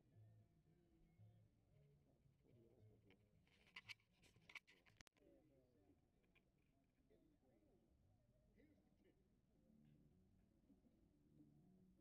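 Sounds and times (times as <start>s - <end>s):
faint scratchy rustles: 3.5s - 5.1s.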